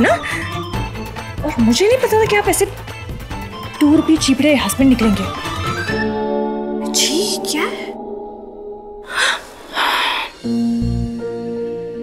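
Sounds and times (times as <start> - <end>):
soft background music: 0.0 - 12.0
breathy rushes of noise: 9.0 - 10.5.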